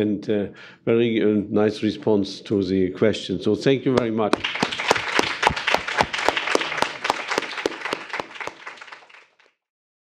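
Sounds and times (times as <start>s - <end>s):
audience applause: 4.3s - 9.5s.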